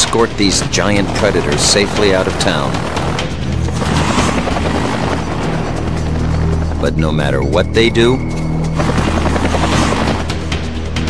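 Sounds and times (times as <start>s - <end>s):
background music: 0.0s - 11.0s
helicopter rotor beating: 0.0s - 11.0s.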